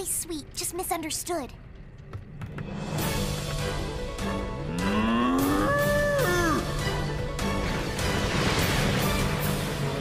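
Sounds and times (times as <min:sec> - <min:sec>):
background music: 0:00.0 - 0:10.0
cartoon cow mooing: 0:04.7 - 0:06.7.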